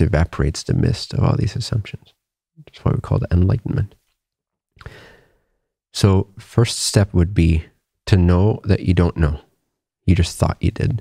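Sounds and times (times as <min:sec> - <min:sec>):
man breathing: 0:04.8 - 0:05.7.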